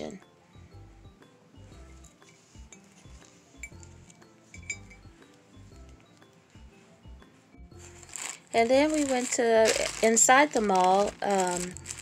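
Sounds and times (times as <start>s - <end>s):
quiet background music: 0.0s - 12.0s
ceramic mug and lid clinking: 4.6s - 5.0s.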